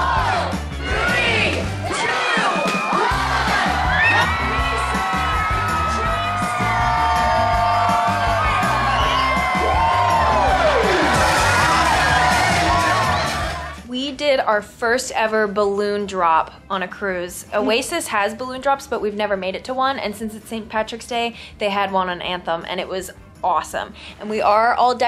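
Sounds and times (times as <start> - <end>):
crowd cheering and whooping: 0.0 - 13.8
loud music with steady beat: 0.0 - 13.8.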